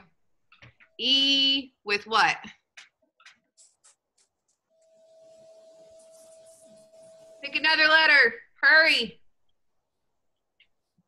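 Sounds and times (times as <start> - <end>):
faint steady hum: 3.6 - 11.0.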